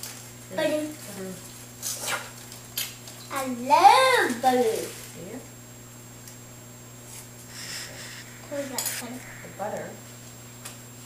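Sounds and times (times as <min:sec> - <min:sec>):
steady low hum: 0:00.0 - 0:11.0
person speaking: 0:07.5 - 0:10.1.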